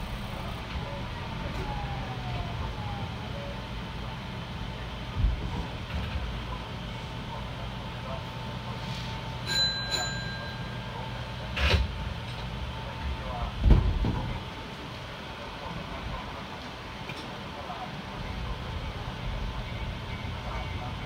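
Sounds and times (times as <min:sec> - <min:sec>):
train equipment low hum: 0:00.0 - 0:21.0.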